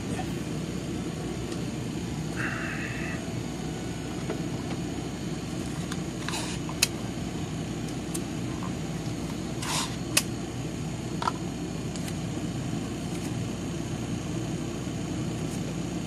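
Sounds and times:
airbrush compressor humming: 0.0 - 11.6.

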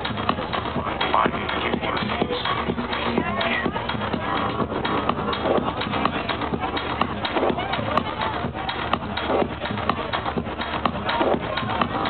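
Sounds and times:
crowd talking: 0.0 - 12.0
electronic dance music: 0.0 - 12.0.

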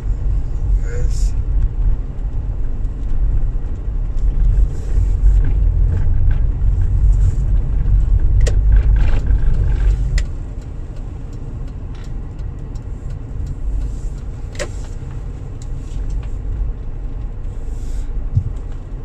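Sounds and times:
engine and road rumble: 0.0 - 19.0.

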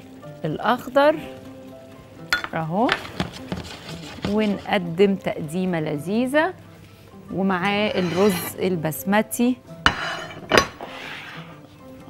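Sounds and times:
soft background music: 0.0 - 12.0
ceramic plate clinking on counter: 2.4 - 3.0, 9.9 - 10.9
plate scraping: 7.8 - 8.6, 9.8 - 11.6.

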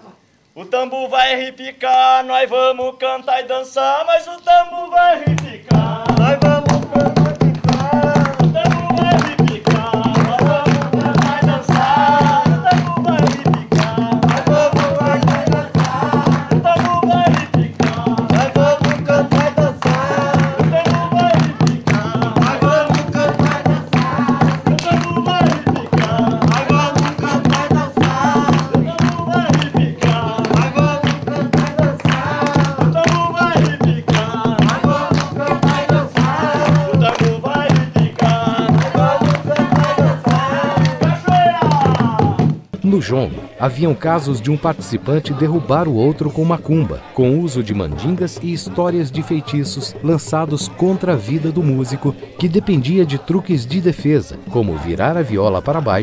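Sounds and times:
voices singing together: 0.8 - 56.0
fast hand drumming: 5.2 - 43.3.

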